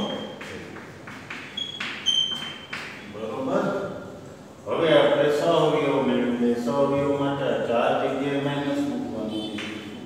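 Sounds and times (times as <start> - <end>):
man speaking: 3.1 - 10.0.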